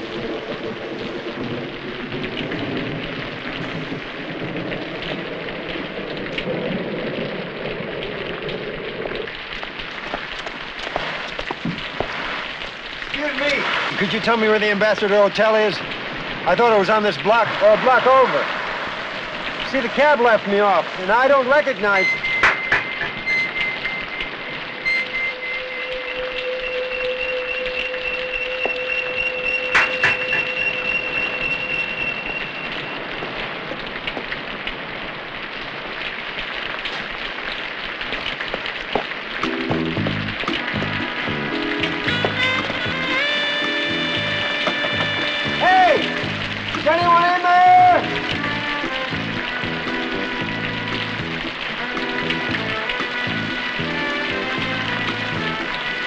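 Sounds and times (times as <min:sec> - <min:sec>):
steady rain: 0:00.0 - 0:56.0
film score music: 0:19.3 - 0:33.0, 0:39.4 - 0:56.0
eerie sustained tones: 0:22.0 - 0:33.1.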